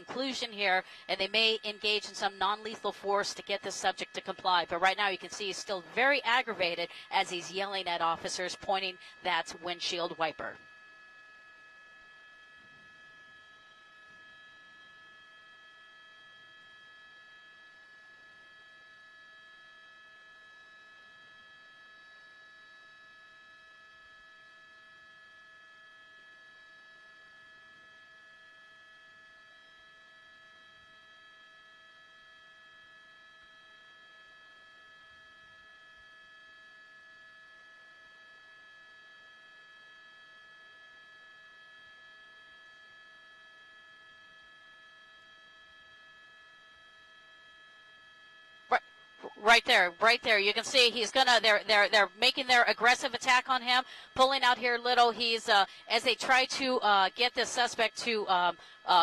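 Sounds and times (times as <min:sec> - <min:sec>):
faint electronic hum: 0:00.0 - 0:59.0.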